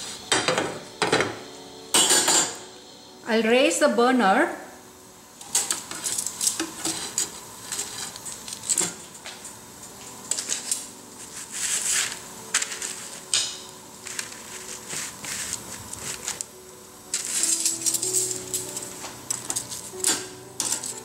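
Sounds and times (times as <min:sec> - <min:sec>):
metal utensil scraping rack: 0:05.4 - 0:09.0, 0:17.1 - 0:21.0.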